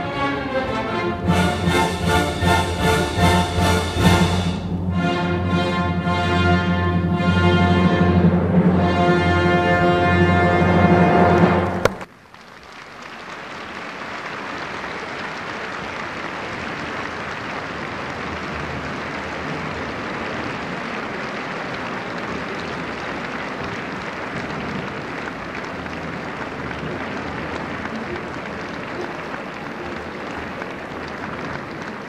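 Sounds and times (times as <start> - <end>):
audience applauding: 1.2 - 4.6, 11.2 - 32.0.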